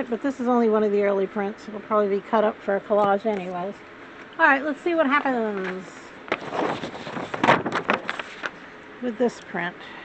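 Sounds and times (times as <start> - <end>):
paper rustling and crinkling: 5.5 - 8.6.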